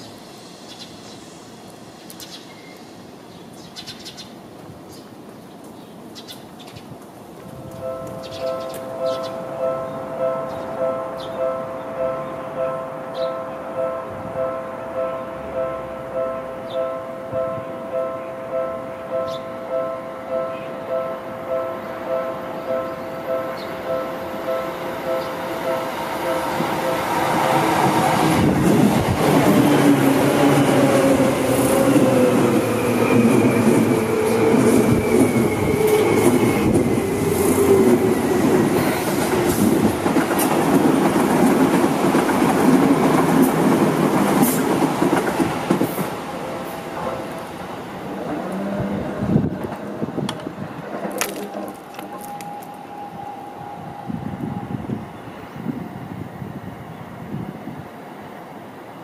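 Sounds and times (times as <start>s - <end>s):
train passing with whine: 0.0s - 59.0s
level crossing bell ringing: 7.8s - 27.7s.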